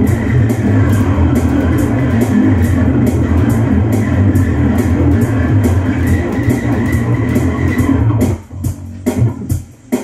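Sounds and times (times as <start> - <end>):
electric bass guitar: 0.0 - 9.6
rhythm backing track: 0.0 - 10.0.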